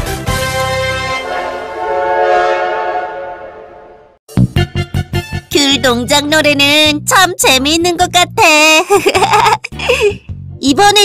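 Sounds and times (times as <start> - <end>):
cartoon steam train whistle: 0.8 - 4.2.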